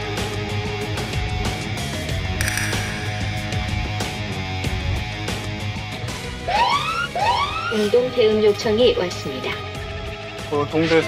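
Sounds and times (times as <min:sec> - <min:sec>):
short bright sound effect: 0:02.4 - 0:04.6
background music with steady beat: 0:02.4 - 0:05.2.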